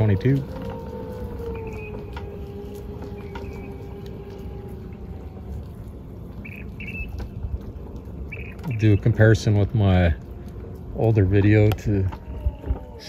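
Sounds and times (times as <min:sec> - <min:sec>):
distant hum dropping in pitch: 0:00.0 - 0:09.1
low rumble: 0:00.0 - 0:13.0
high bird chirps: 0:03.2 - 0:03.9, 0:06.4 - 0:07.2, 0:08.3 - 0:09.0.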